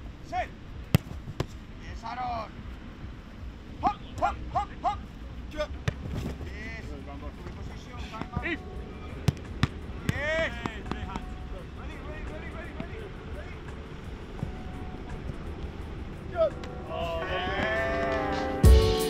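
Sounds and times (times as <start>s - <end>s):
footballs thudding: 0.8s - 1.6s, 5.8s - 6.5s, 7.4s - 8.6s, 9.2s - 11.4s
short shouted calls: 16.3s - 18.5s.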